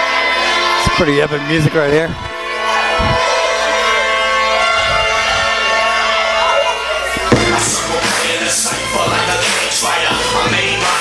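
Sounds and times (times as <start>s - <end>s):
low thud: 7.2s - 8.6s
entrance music over a pa: 7.2s - 9.5s.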